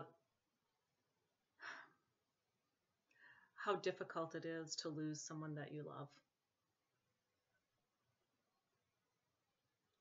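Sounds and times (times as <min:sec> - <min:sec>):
woman breathing: 0:01.6 - 0:02.2, 0:03.1 - 0:03.6.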